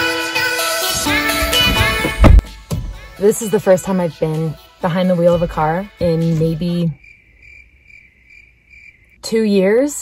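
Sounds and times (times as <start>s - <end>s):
insect chirping: 6.0s - 9.7s.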